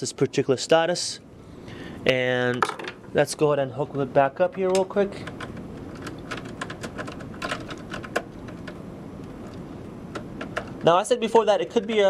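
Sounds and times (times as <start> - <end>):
steady low background noise: 0.0 - 12.0
wire clicks and taps: 4.5 - 10.9.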